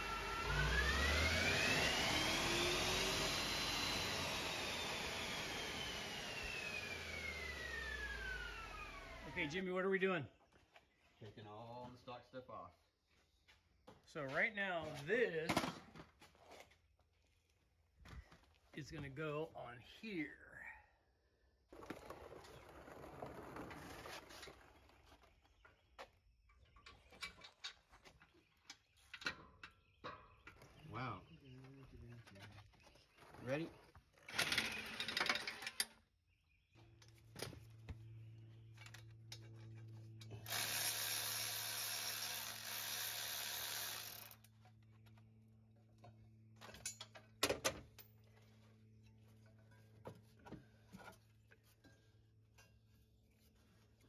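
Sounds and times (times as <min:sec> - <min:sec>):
power tool running: 0:00.0 - 0:09.6, 0:34.2 - 0:35.9, 0:40.2 - 0:44.5
metal tools clanking: 0:46.6 - 0:48.2.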